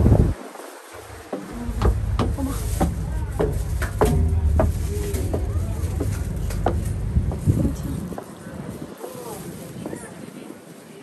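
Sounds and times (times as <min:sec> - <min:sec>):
boat engine drone: 0:01.0 - 0:08.8
short knocks: 0:01.4 - 0:07.8.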